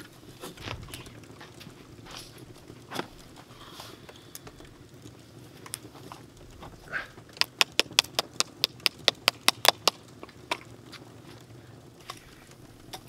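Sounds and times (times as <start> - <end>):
rapid sharp taps: 7.3 - 10.0.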